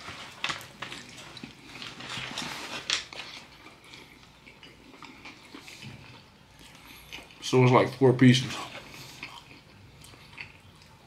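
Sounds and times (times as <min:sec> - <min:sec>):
close-up wet chewing: 0:00.2 - 0:11.0.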